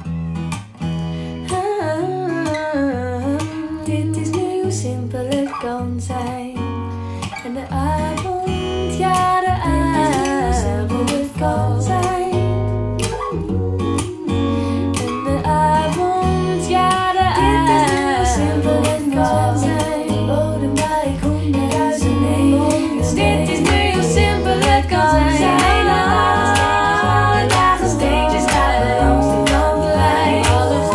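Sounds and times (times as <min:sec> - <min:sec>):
acoustic guitar: 0:00.0 - 0:30.9
woman singing: 0:01.4 - 0:30.9
pop song over loudspeakers: 0:01.5 - 0:06.6, 0:07.3 - 0:30.9.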